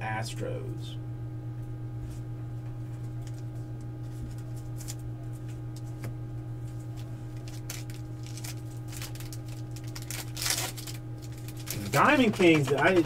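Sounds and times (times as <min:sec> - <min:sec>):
low electrical hum: 0:00.0 - 0:13.0
trading cards rustling and clicking: 0:04.0 - 0:06.1, 0:06.7 - 0:13.0.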